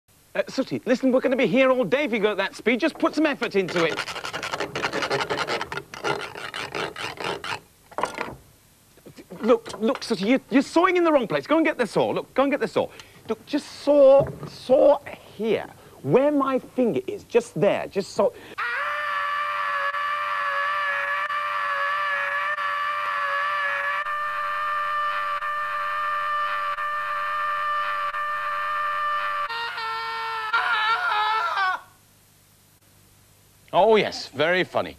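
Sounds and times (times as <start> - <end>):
hand saw sawing quickly: 3.5 - 7.7
man screaming in pain: 18.6 - 31.9.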